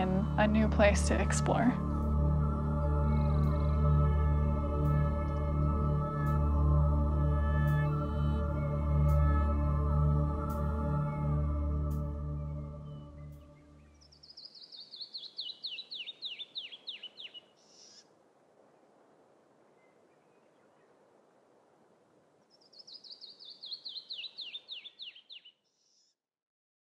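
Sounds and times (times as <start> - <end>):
ambient music: 0.0 - 14.1
faint steady hiss: 0.0 - 24.8
small bird singing: 12.4 - 18.1, 22.5 - 26.2.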